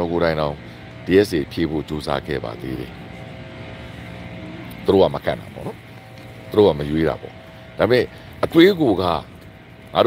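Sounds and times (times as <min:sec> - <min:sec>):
faint hum: 0:00.0 - 0:10.0
low mechanical drone: 0:00.0 - 0:10.0.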